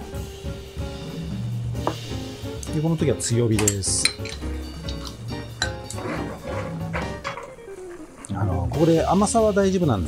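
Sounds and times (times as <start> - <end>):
background music: 0.0 - 10.0
kitchenware clinking: 3.5 - 8.3.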